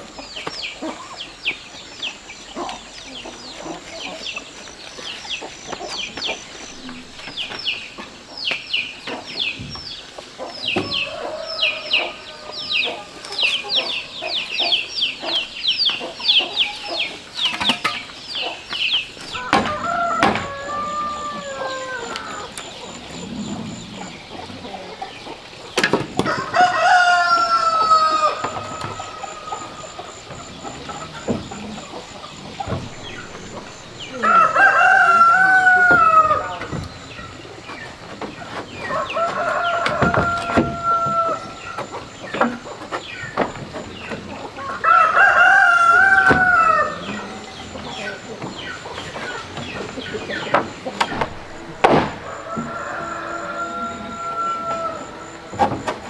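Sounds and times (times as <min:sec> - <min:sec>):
rooster crowing: 0:10.8 - 0:14.2, 0:19.3 - 0:23.1, 0:26.2 - 0:36.8, 0:38.8 - 0:42.1, 0:44.6 - 0:48.0, 0:51.1 - 0:55.6
sharp knocks: 0:51.0 - 0:52.8.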